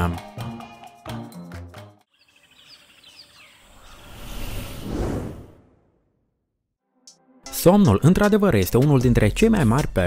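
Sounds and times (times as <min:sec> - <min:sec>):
bird-like chirps: 0:02.1 - 0:04.8
whoosh of noise: 0:03.8 - 0:06.1.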